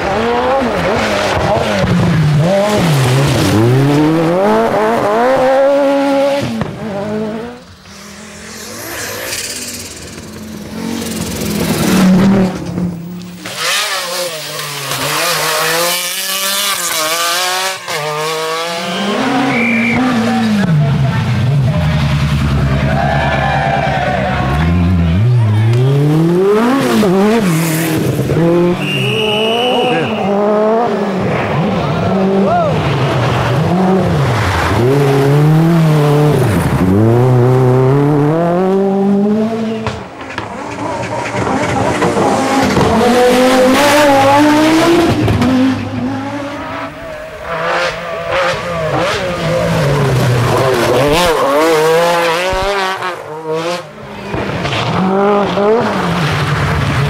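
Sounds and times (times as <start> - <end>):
rally car engines revving past: 0.0 - 57.0.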